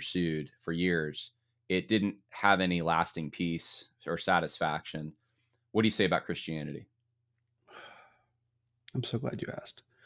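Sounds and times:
person breathing: 0:07.6 - 0:08.4.

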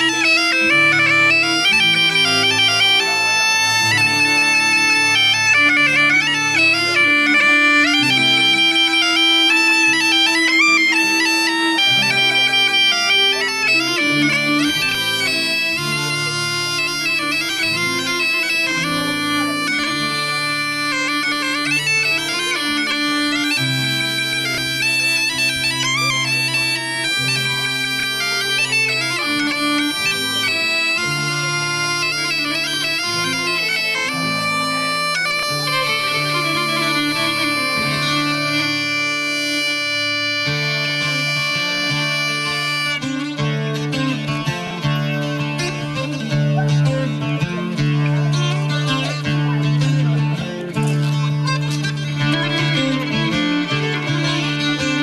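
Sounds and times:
bagpipe tune over drone: 0:00.0 - 0:55.0.

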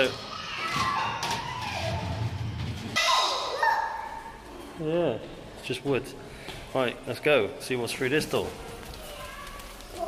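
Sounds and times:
children's voices: 0:03.0 - 0:04.5, 0:08.8 - 0:10.0.

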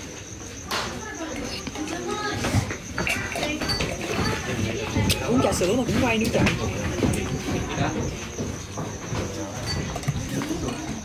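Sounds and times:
low voices talking: 0:00.0 - 0:11.0.

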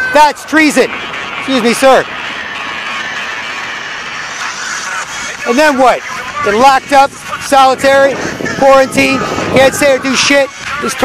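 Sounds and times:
vehicle passing: 0:00.8 - 0:06.5.

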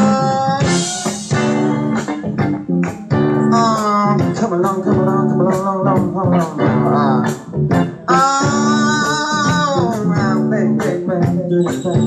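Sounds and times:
bass guitar: 0:00.0 - 0:12.0
electric guitar: 0:00.0 - 0:12.0.

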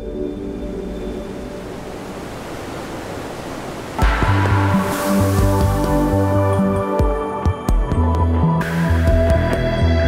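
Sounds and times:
ambient music: 0:00.0 - 0:03.0, 0:03.9 - 0:10.0
falling water rushing: 0:00.4 - 0:07.3.

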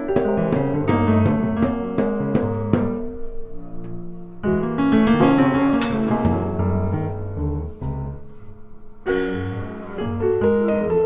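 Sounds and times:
jazz piano chords: 0:00.0 - 0:11.0
low bass notes: 0:03.8 - 0:10.6.

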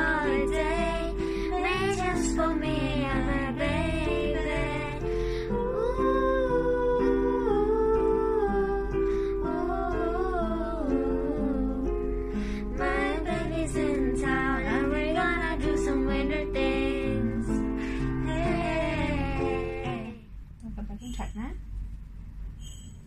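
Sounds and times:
girl humming a melody: 0:00.0 - 0:12.2, 0:12.8 - 0:20.2
acoustic guitar chords: 0:00.0 - 0:20.2.

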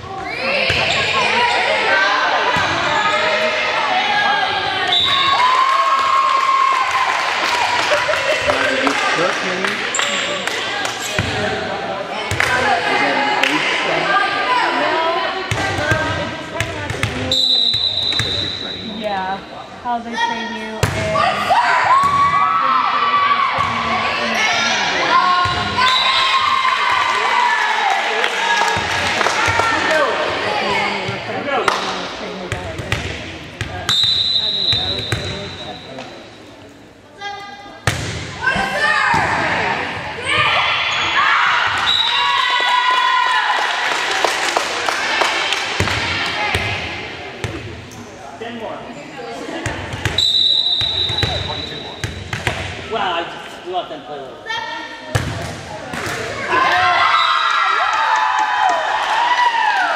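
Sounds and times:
spectators shouting and cheering: 0:00.0 - 0:16.0, 0:21.1 - 0:31.6, 0:38.4 - 0:47.3, 0:56.0 - 0:59.9
referee whistle blast: 0:17.3 - 0:18.8, 0:33.9 - 0:35.8, 0:50.2 - 0:52.0
ball hitting and bouncing: 0:52.0 - 0:52.8.

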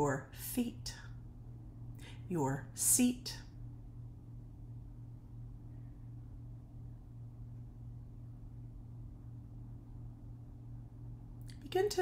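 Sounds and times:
faint background hiss: 0:00.0 - 0:12.0
steady low hum: 0:00.0 - 0:12.0.

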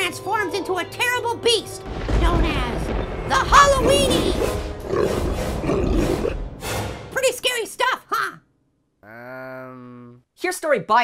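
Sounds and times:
cartoon voice groaning: 0:09.0 - 0:10.2.

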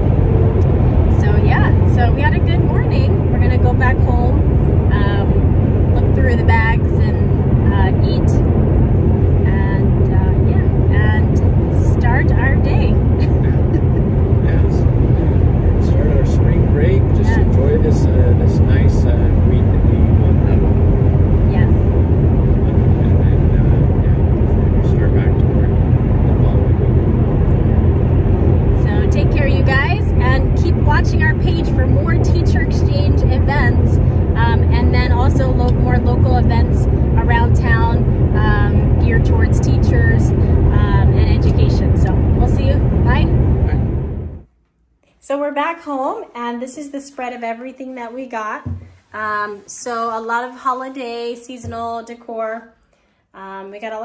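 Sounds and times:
car engine and road rumble: 0:00.0 - 0:44.5
voices talking: 0:00.6 - 0:08.5, 0:09.4 - 0:20.9, 0:21.5 - 0:27.9, 0:28.8 - 0:43.8.

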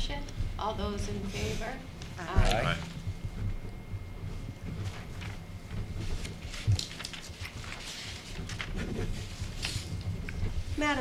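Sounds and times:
low room hum: 0:00.0 - 0:11.0
paper rustling: 0:04.4 - 0:11.0.

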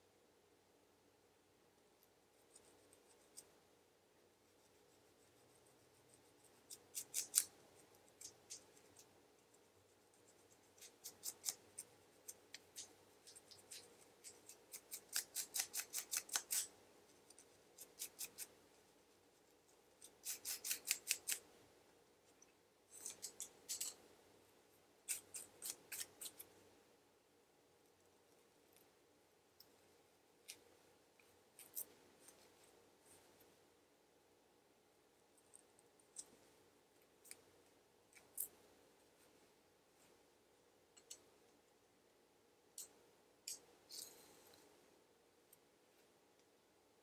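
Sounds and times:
scratching scalp through hair: 0:02.4 - 0:03.5, 0:04.4 - 0:21.5, 0:25.0 - 0:26.6.

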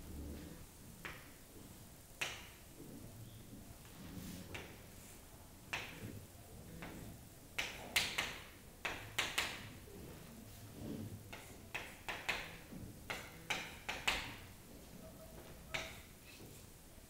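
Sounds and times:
chalk tapping and scraping on chalkboard: 0:03.8 - 0:16.7.

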